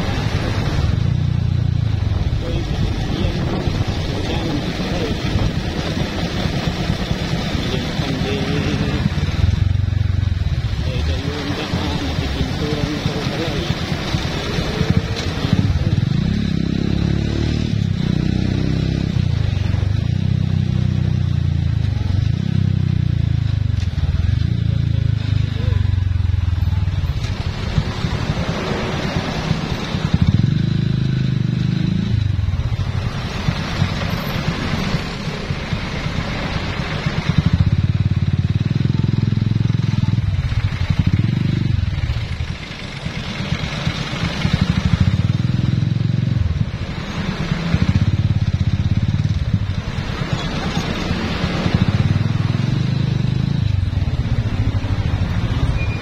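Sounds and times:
motorcycle engine revving: 0.0 - 56.0
road and wind noise: 0.0 - 56.0.

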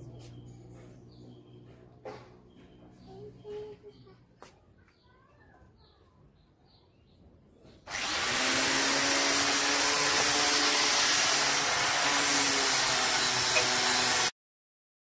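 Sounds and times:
angle grinder sanding wood: 7.9 - 14.3.

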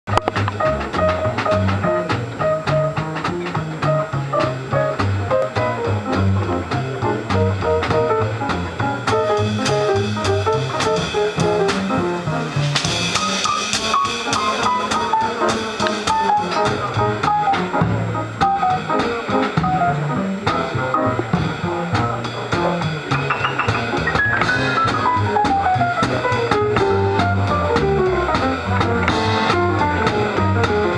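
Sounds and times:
acoustic piano: 0.1 - 30.9
drum kit: 0.1 - 30.9
upright bass walking line: 0.1 - 30.9.

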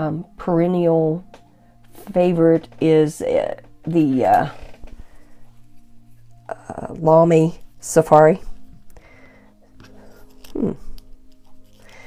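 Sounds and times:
woman humming hmm: 10.3 - 11.1.

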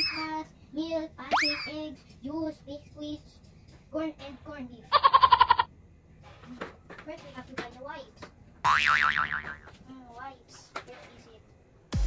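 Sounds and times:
cartoon boing sound effect: 8.7 - 9.7.

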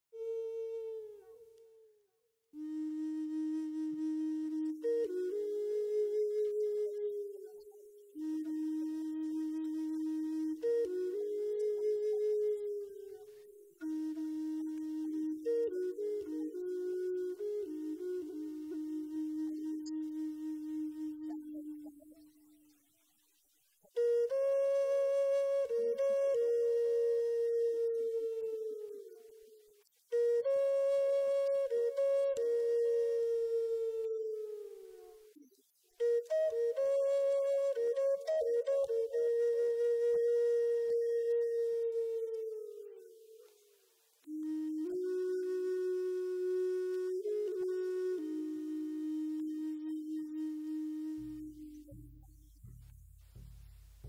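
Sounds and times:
flute playing slow notes: 0.0 - 22.8, 23.8 - 54.0.

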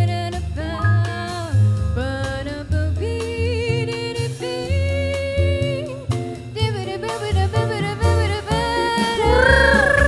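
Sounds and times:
jazz band playing: 0.0 - 10.0
upright bass: 0.0 - 10.0
woman singing with vibrato: 0.0 - 10.0.

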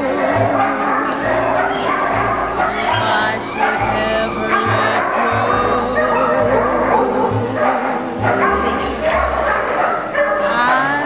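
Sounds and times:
loud background music: 0.0 - 10.3
dog barking: 0.0 - 11.0.

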